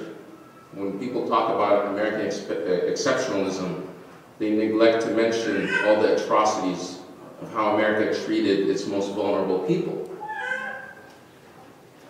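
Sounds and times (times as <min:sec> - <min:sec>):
high-pitched wavering cry: 0:05.5 - 0:06.2, 0:10.2 - 0:11.1.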